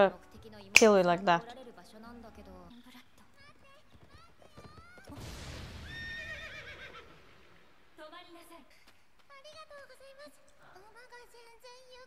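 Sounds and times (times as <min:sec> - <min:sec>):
horse neighing: 0:06.1 - 0:07.2.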